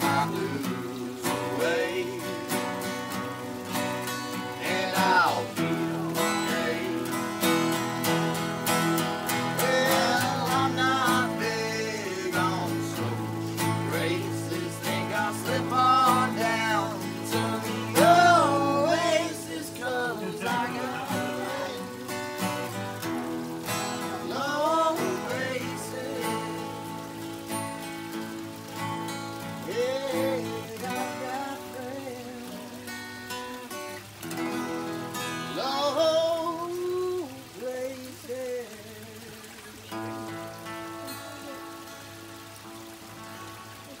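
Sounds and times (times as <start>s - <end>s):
man's voice wordless singing: 0.0s - 27.5s, 29.3s - 39.8s
acoustic guitars strumming: 0.0s - 44.0s.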